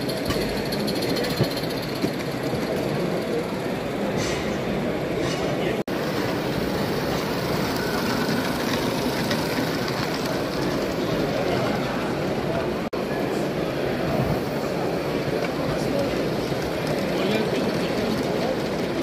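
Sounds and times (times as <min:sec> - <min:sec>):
crowd chatter: 0:00.0 - 0:19.0
model steam locomotive running: 0:00.0 - 0:19.0.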